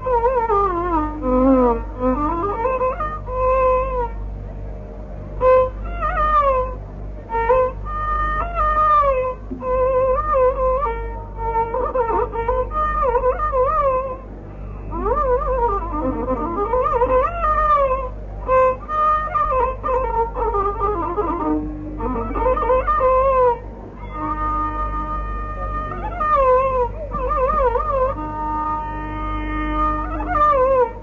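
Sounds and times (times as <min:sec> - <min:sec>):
bamboo flute playing: 0:00.0 - 0:31.0.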